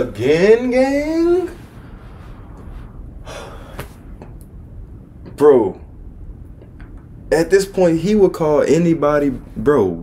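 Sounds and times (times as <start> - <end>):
man gasping: 3.2 - 4.0.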